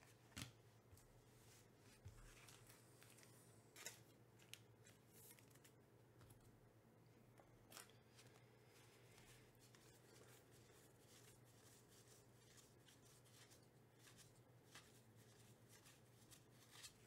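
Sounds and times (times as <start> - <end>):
quiet room hum: 0.0 - 17.0.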